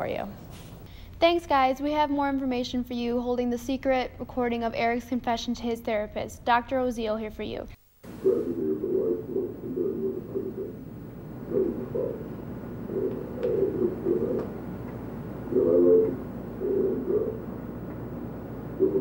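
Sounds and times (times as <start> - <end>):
steady low hum: 7.8 - 19.0
man talking on muffled tape: 8.1 - 19.0.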